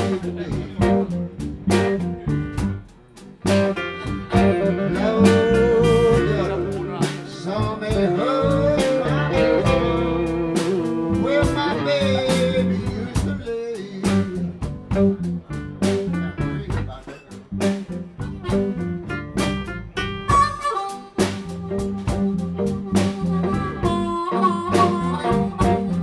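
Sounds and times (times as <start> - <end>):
drum beat: 0.0 - 26.0
live blues band playing: 0.0 - 26.0
harmonica long note: 3.9 - 13.1, 18.2 - 26.0
person singing oh: 4.3 - 15.2.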